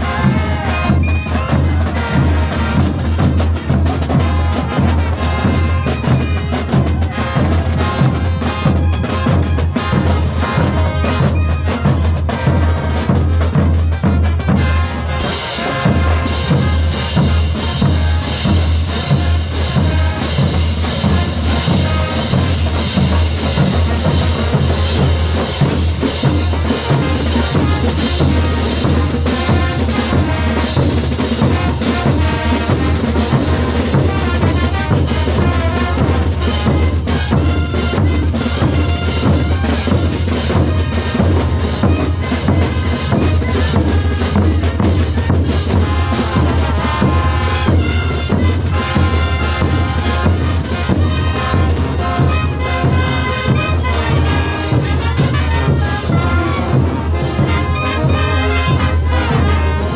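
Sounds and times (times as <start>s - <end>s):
bass drums beating: 0.0s - 59.8s
marching brass band playing: 0.0s - 59.9s
snare drums: 0.0s - 59.9s.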